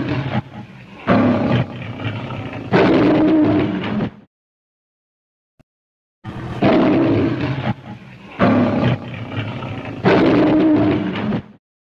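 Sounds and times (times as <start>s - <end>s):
lion roaring: 0.0s - 4.3s, 6.3s - 11.6s.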